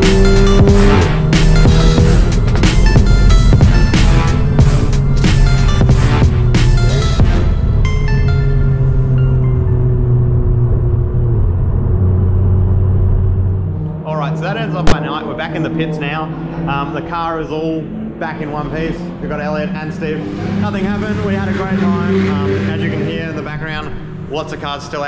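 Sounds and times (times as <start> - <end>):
electronic dance music: 0.0 - 7.7
low synth notes: 0.0 - 25.0.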